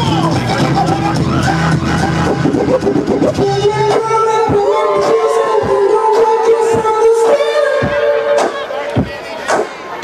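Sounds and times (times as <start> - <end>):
bass line: 0.0 - 9.2
choppy cut-up turntable sound: 0.0 - 9.8.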